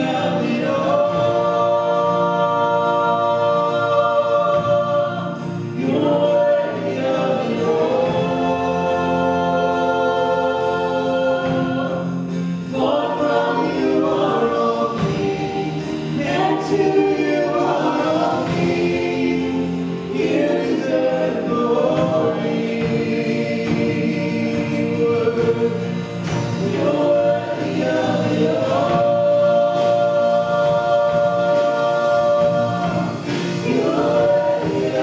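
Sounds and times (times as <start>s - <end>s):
drums: 0.0s - 35.0s
guitars: 0.0s - 35.0s
many voices singing along: 0.0s - 35.0s
piano: 0.0s - 35.0s
woman singing lead: 0.0s - 35.0s.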